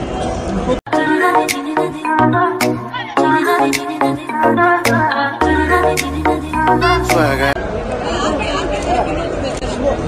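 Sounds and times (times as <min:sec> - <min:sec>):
background music: 0:00.9 - 0:07.6.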